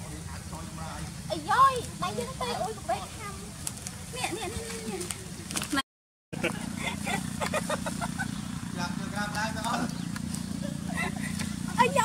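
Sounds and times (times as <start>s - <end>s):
steady low hum: 6.4s - 12.0s.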